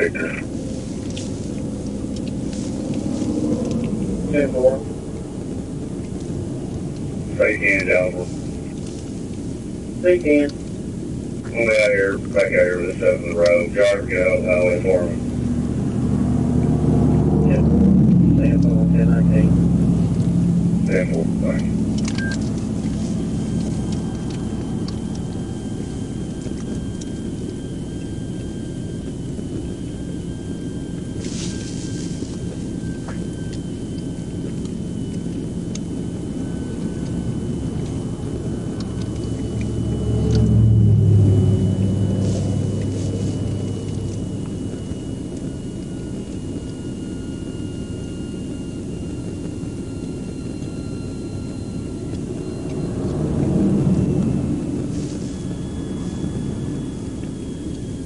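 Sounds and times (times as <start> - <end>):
vehicles passing: 0.0 - 46.0, 51.9 - 57.6
low road rumble: 0.0 - 58.0.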